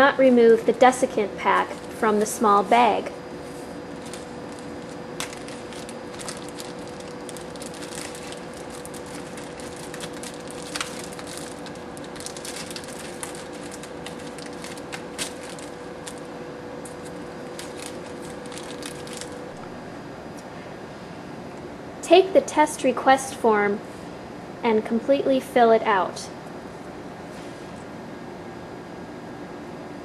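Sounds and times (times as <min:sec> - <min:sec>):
faint hum: 0:00.0 - 0:30.0
plastic bag and cards crinkling: 0:00.8 - 0:19.7.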